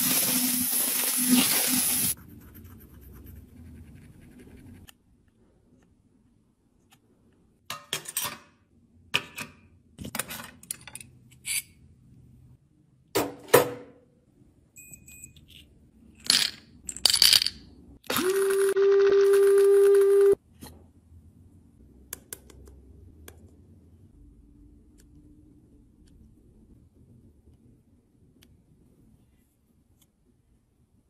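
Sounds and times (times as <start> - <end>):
makeup pieces clattering into cup: 16.2 - 17.6.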